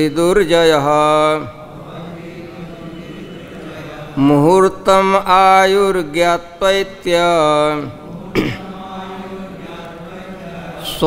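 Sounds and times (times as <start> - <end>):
man chanting: 0.0 - 11.0
group of voices chanting: 1.2 - 5.1, 7.5 - 11.0.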